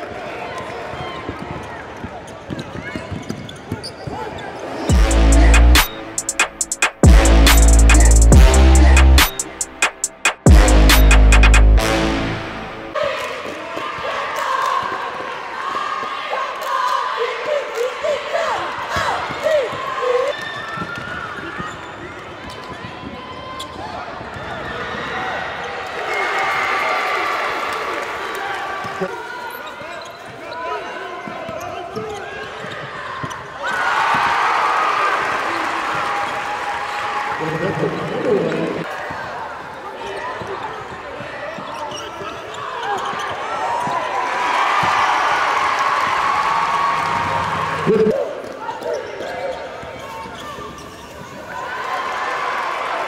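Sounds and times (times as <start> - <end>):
crowd and players' voices: 0.0 - 53.0
sneakers squeaking: 1.3 - 5.0, 18.8 - 24.6, 28.9 - 33.8, 37.8 - 44.1, 46.7 - 51.5.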